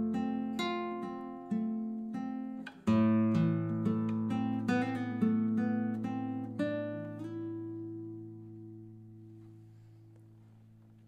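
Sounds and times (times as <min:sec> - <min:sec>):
classical guitar plucked chords: 0:00.0 - 0:11.0.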